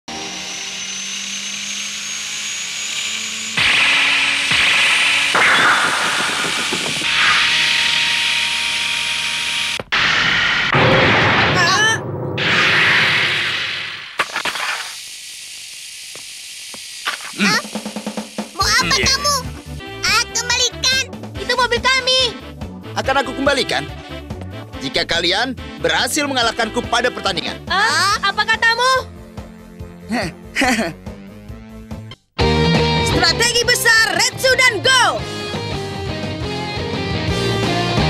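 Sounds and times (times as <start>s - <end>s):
thin high whine: 0.1s - 10.8s, 12.3s - 19.4s
noisy sound effects: 3.0s - 15.0s
music: 17.7s - 38.0s.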